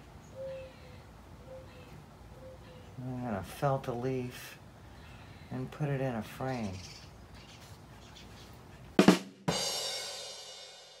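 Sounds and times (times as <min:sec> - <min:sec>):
quick drum hits: 0:09.0 - 0:11.0.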